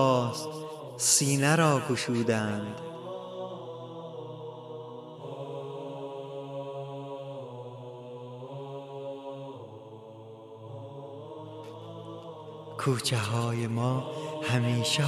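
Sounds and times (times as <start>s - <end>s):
wordless chant-like vocal music: 0.0s - 15.0s.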